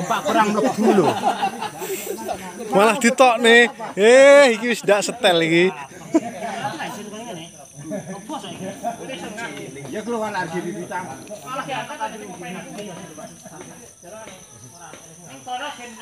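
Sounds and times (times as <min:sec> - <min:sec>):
men talking in background: 0:00.0 - 0:16.0.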